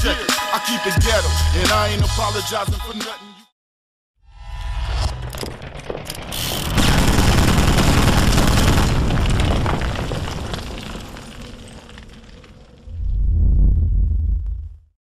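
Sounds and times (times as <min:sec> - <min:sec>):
deep low rumble: 0:12.0 - 0:15.0
cinematic boom: 0:12.9 - 0:14.9.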